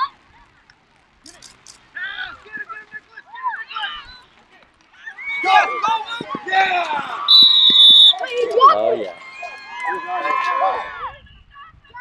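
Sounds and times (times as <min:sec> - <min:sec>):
voices shouting: 0:01.9 - 0:12.0.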